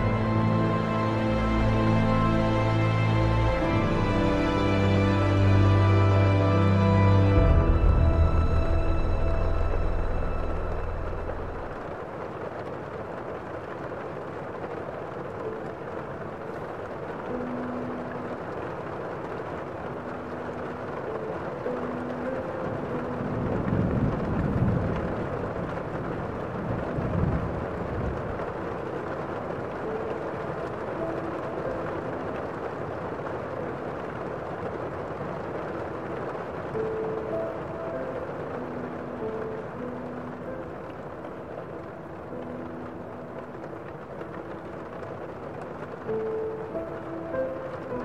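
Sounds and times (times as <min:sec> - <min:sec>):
deep rumbling swells: 0:00.0 - 0:13.0
light rain: 0:00.0 - 0:48.0.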